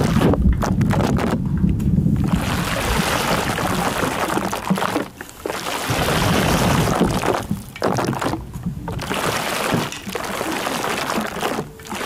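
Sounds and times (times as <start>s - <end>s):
water pouring and splashing: 0.0s - 1.6s, 2.2s - 12.0s.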